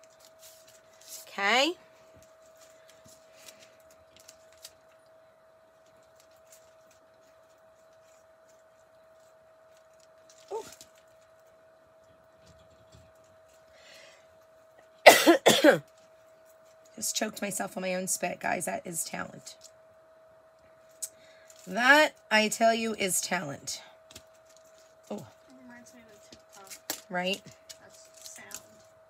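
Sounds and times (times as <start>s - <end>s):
woman coughing hard: 15.0s - 15.8s.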